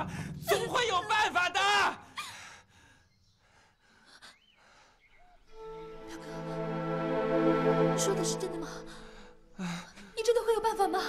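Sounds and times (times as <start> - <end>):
soft background music: 5.5 - 9.6, 10.2 - 11.0.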